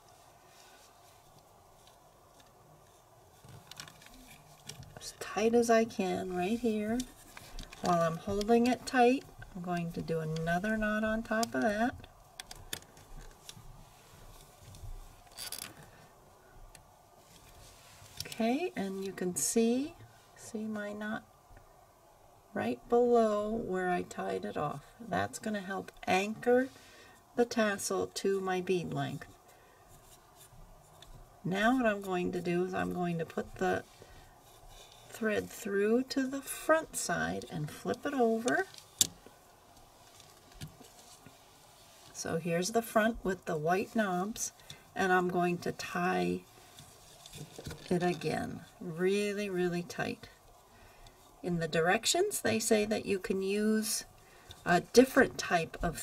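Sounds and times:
scratchy thread rustle: 0.0 - 21.4, 22.6 - 56.0
plastic frame handling noises: 1.2 - 5.1, 6.6 - 10.6, 46.4 - 48.3.

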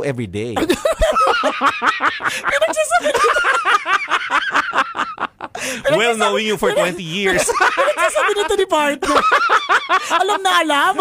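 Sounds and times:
people laughing: 0.6 - 11.0.

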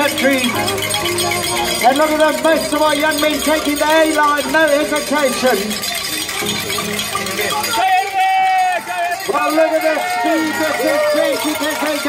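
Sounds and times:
person shouting a long cheer: 7.7 - 12.0.

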